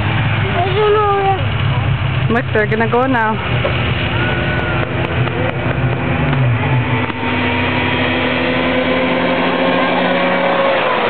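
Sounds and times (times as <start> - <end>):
snowmobile engines droning: 0.0 - 11.0.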